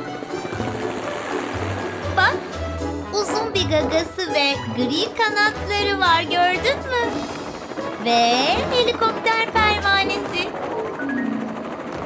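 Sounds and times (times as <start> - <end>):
cartoon helicopter rotor whirr: 0.0 - 12.0
cheerful background music: 0.0 - 12.0.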